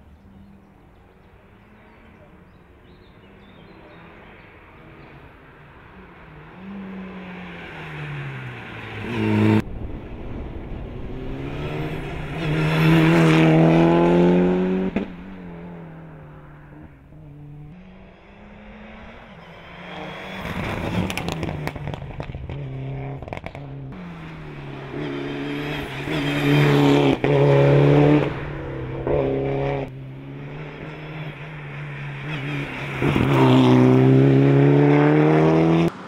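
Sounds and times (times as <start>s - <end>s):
rally car engine at full throttle: 1.2s - 36.0s.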